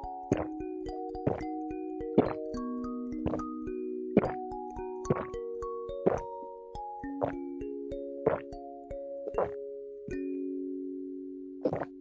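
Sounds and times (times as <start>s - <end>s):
music with slow held chords: 0.0s - 12.0s.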